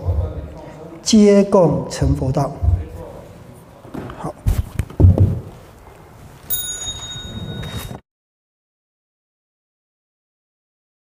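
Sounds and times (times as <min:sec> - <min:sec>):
microphone handling thumps: 0:00.0 - 0:00.5, 0:02.0 - 0:03.1, 0:03.9 - 0:05.7
high bell-like ring: 0:06.5 - 0:08.0.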